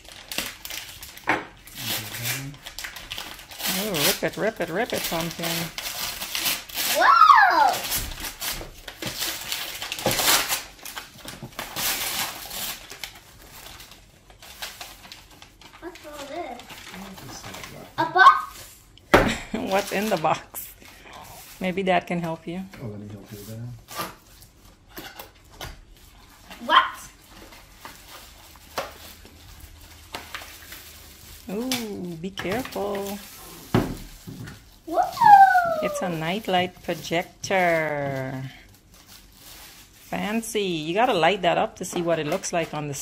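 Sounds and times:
tissue paper rustling: 0:00.0 - 0:18.8, 0:25.9 - 0:41.2.

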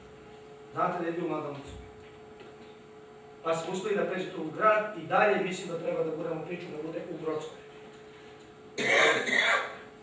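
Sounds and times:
man clearing his throat: 0:08.8 - 0:09.9.

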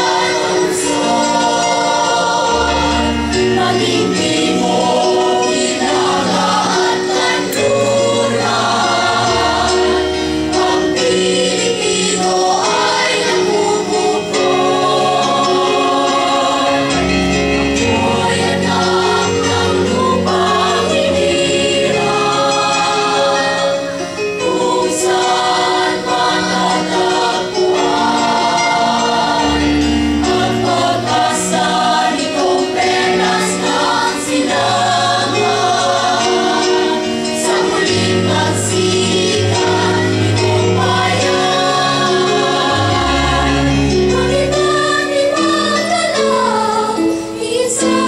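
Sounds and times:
choir singing chords: 0:00.0 - 0:48.0.

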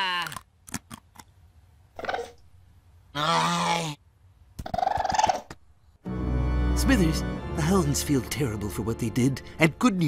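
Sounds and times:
cartoon raccoon calls: 0:03.1 - 0:05.5.

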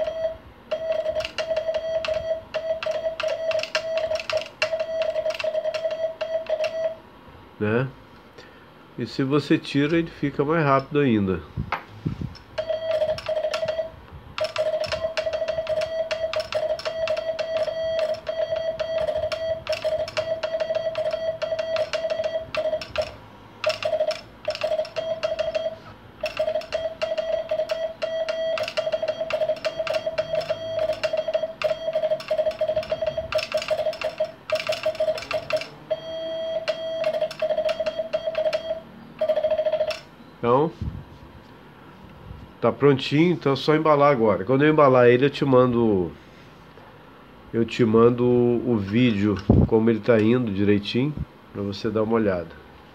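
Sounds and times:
rapid morse code beeps: 0:00.0 - 0:07.0, 0:12.6 - 0:40.1
morse key clicking: 0:00.9 - 0:06.8, 0:14.4 - 0:35.8.

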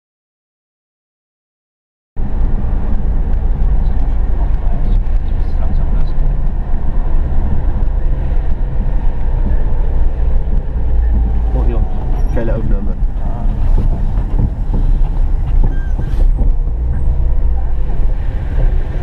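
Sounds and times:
car driving on wet road: 0:02.2 - 0:19.0.

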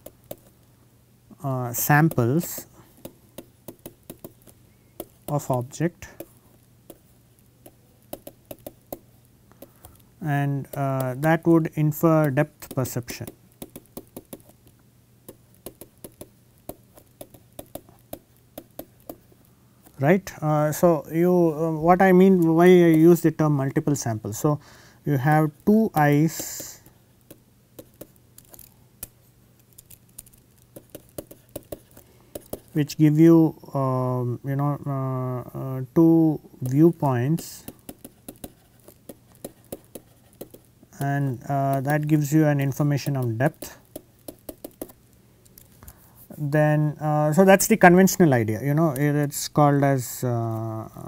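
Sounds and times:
stylus tapping on tablet: 0:00.0 - 0:00.5, 0:03.0 - 0:06.3, 0:07.6 - 0:10.0, 0:12.2 - 0:14.6, 0:15.3 - 0:19.2, 0:25.7 - 0:29.2, 0:29.8 - 0:32.7, 0:37.4 - 0:41.1, 0:43.0 - 0:45.0
faint low hum: 0:00.0 - 0:51.0.

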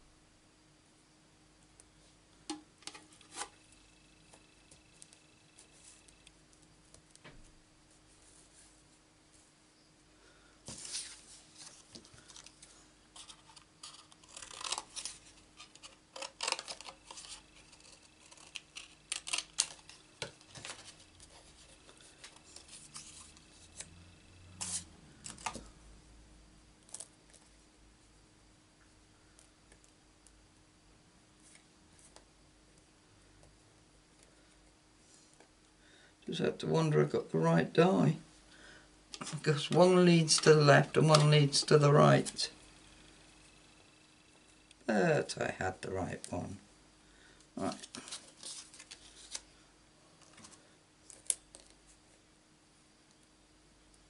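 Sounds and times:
cardstock rustling and sliding: 0:10.7 - 0:25.7.

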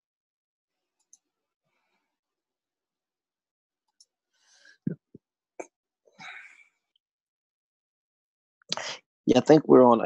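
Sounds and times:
person breathing: 0:04.3 - 0:04.9, 0:08.7 - 0:09.0.

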